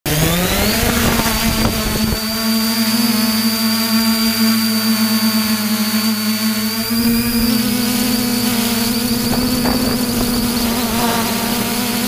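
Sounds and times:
drone propellers whining: 0.1s - 12.0s.

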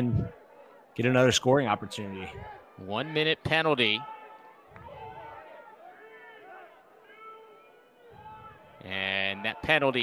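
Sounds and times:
faint overlapping shouts and calls: 0.0s - 10.0s.

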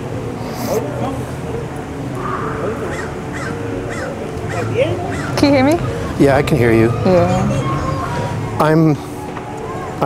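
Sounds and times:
bird calling: 2.2s - 10.0s.

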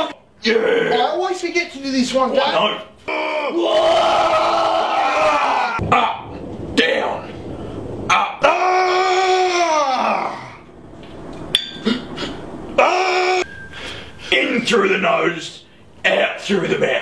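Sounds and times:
man shouting: 12.8s - 13.5s
man yelling: 12.8s - 13.5s.

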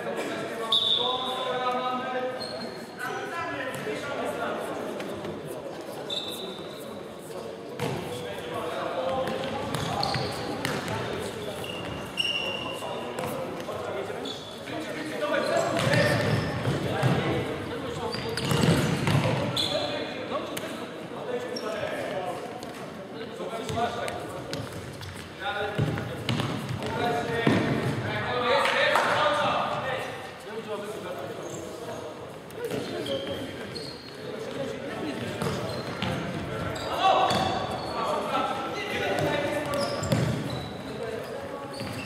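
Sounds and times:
shoes squeaking on wooden floor: 9.5s - 10.7s, 11.4s - 13.4s, 15.3s - 19.9s, 32.6s - 34.7s, 35.4s - 42.0s.

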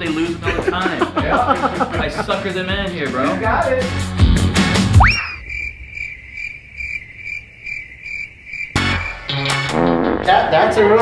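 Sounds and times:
music: 0.0s - 5.1s, 8.8s - 11.0s
rising whistle-like glide: 5.0s - 6.3s
cricket chirp sound effect: 5.0s - 9.6s.

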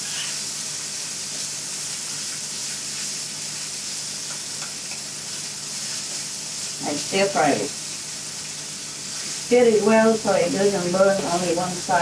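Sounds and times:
tofu sizzling in hot oil: 0.0s - 12.0s.

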